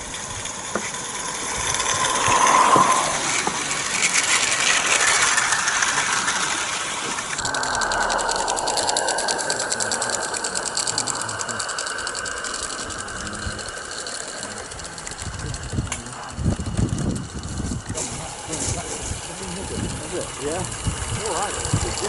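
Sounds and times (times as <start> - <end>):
model steam train running past: 0.0 - 22.0.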